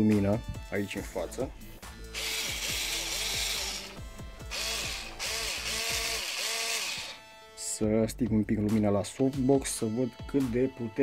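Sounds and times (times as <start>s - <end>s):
cordless screwdriver spinning: 2.1s - 7.2s.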